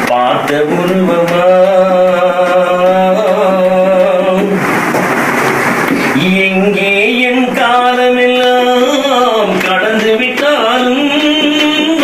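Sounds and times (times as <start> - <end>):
man singing: 0.0 - 4.6, 6.0 - 12.0.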